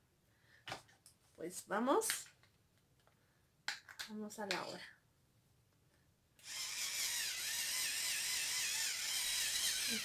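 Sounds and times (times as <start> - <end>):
facial brush motor whine: 6.4 - 10.0.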